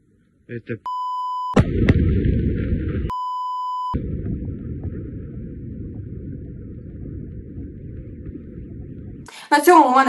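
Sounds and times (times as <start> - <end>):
high electronic beep: 0.9 - 1.6, 3.1 - 4.0
deep explosion rumble: 1.6 - 3.2, 3.9 - 10.0.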